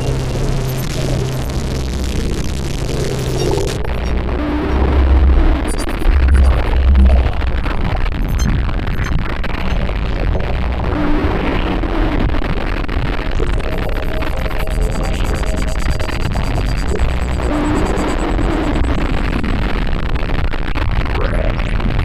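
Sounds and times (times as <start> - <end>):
electronic music: 0.0 - 11.2, 13.3 - 19.3.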